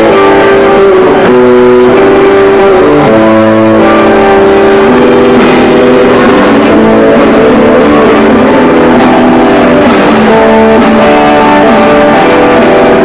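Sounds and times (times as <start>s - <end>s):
bass guitar: 0.0s - 13.0s
distorted electric guitar chords: 0.0s - 13.0s
drums: 0.0s - 13.0s.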